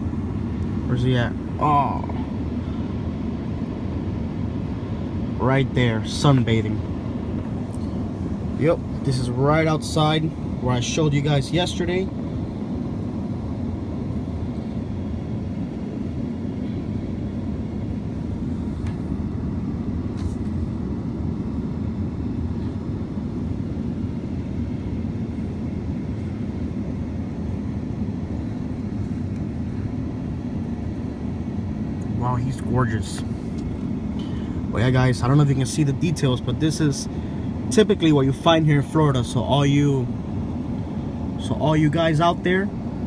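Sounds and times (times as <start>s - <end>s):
vehicle engine idling: 0.0s - 43.0s.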